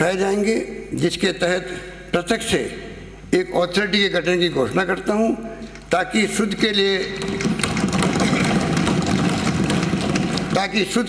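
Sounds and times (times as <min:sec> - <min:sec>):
people thumping desks: 0:07.1 - 0:11.0.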